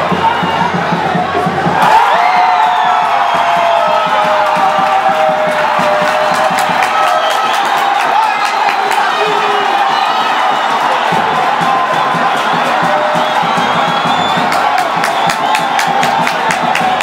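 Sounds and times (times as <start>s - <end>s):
stadium crowd cheering and shouting: 0.0s - 17.0s.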